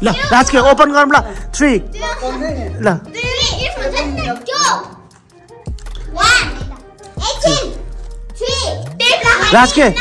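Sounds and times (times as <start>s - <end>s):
background music: 0.0s - 10.0s
children's excited voices: 1.9s - 5.0s, 6.0s - 10.0s.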